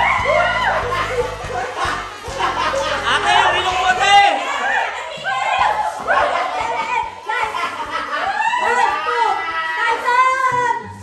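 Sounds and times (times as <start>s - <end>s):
people shouting and cheering: 0.0s - 11.0s.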